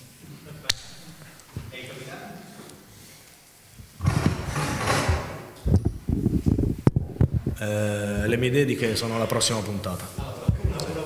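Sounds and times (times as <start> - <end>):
microphone handling noise: 3.8 - 8.4, 10.1 - 11.0.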